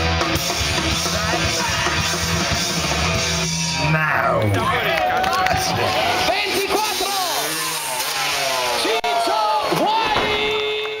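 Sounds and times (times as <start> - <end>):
dirt bike engine revving: 5.6 - 10.4.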